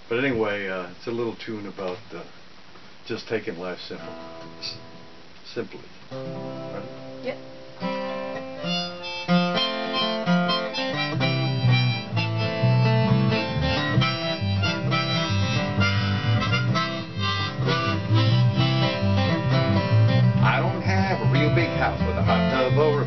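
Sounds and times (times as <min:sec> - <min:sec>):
strummed acoustic guitar: 0:06.1 - 0:23.0
bass guitar: 0:08.0 - 0:23.0
harmonica melody: 0:08.2 - 0:23.0.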